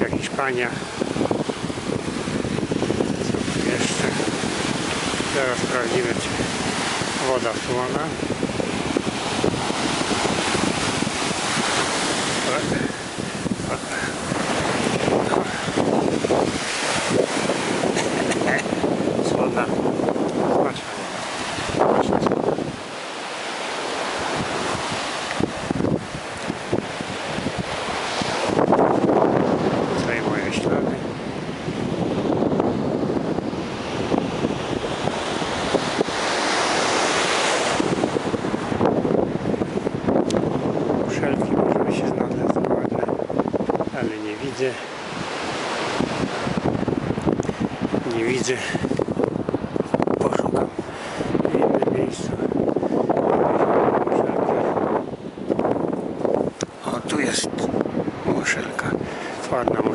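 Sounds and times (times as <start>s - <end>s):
surf breaking on beach: 0.0s - 59.9s
wind buffeting microphone: 0.0s - 59.9s.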